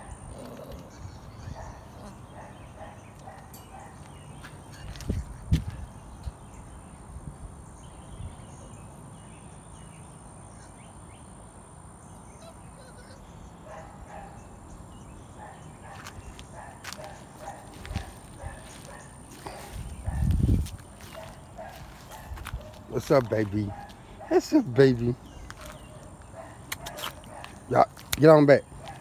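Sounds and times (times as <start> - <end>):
puppies whimpering and yipping: 0.0 - 3.0.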